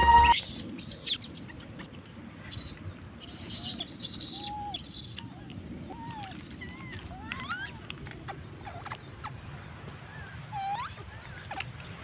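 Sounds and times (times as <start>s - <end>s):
rising and falling whistled calls: 0.0s - 1.2s.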